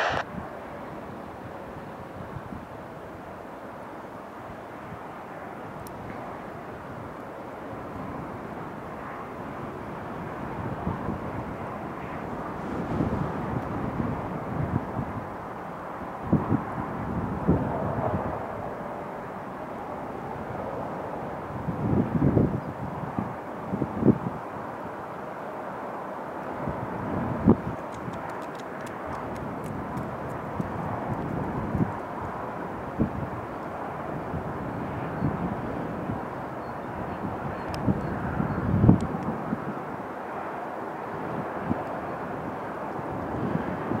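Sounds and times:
distant jet engines rushing: 0.0 - 1.4
wind buffeting microphone: 0.0 - 2.8, 7.7 - 19.3, 20.1 - 24.7, 26.5 - 40.0, 41.1 - 44.0.

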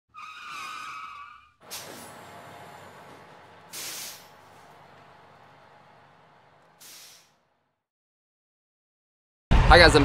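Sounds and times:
tyres squealing: 0.1 - 5.7
steady hiss: 3.7 - 4.4.

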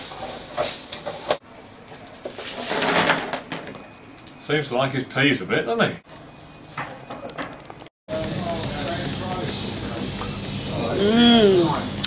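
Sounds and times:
room noise with low hum: 0.0 - 12.0
indistinct voices: 8.1 - 12.0.

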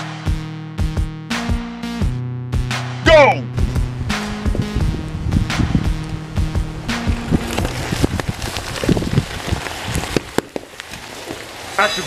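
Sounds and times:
syrup sizzling and crackling pops: 5.9 - 12.0.

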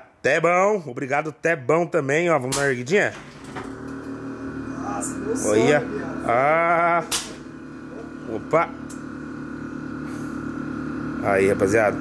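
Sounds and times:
air suspension mechanical hum: 3.2 - 12.0.

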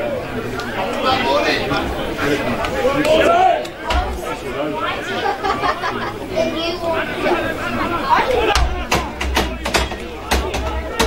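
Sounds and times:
overlapping voices: 0.0 - 11.0.

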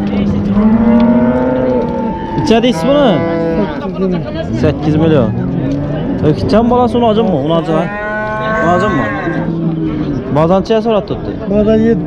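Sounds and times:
cow mooing: 0.4 - 3.9, 7.6 - 9.9.

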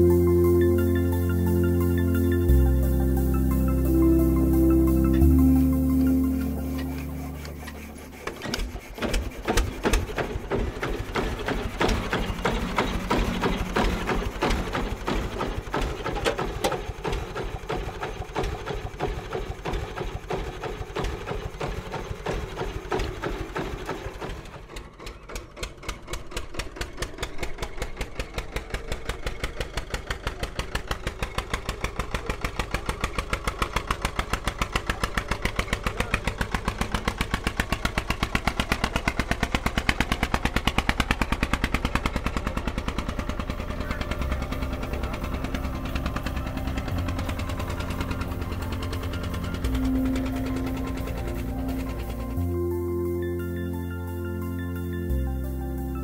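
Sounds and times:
tractor engine chugging: 0.0 - 56.0.

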